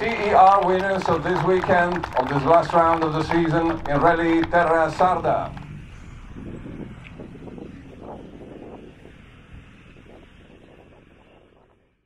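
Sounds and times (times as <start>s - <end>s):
faint crowd noise: 0.0s - 9.0s
wind on microphone: 0.0s - 12.0s.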